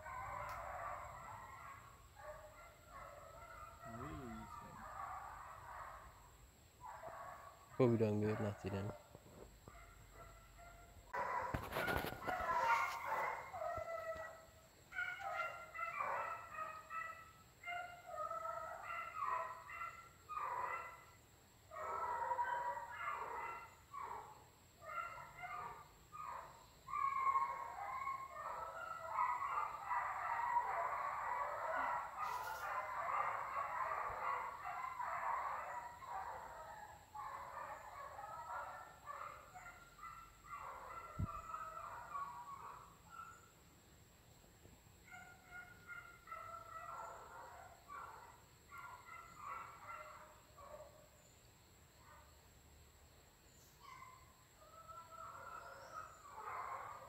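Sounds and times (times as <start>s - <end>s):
hunting dogs barking and yelping: 0.0s - 57.0s.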